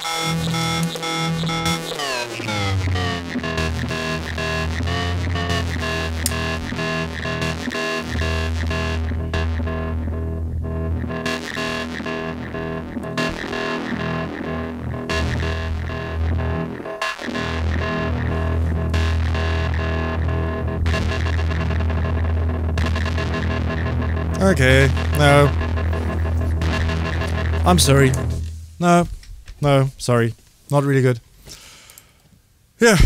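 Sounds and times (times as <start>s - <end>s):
layered synth tones: 0.0s - 28.5s
deep bass drone: 2.4s - 28.7s.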